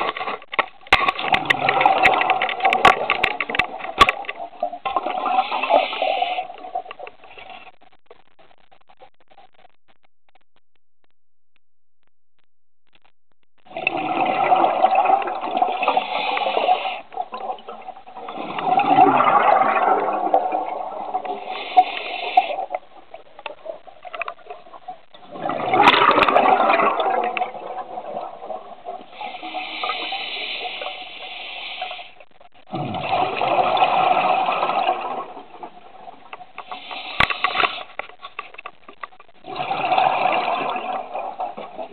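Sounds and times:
diver exhaling bubbles underwater: 1.0 - 3.8, 13.7 - 22.7, 25.2 - 31.0, 32.7 - 37.7, 39.4 - 41.9.

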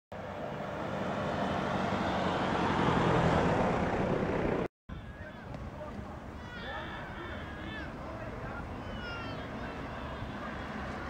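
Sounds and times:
street background: 0.1 - 11.0
vehicle passing by: 0.2 - 4.7.

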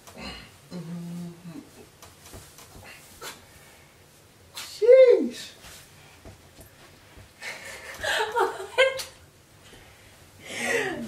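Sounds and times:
person humming low mm: 0.0 - 1.8
faint rustling: 1.1 - 4.4.

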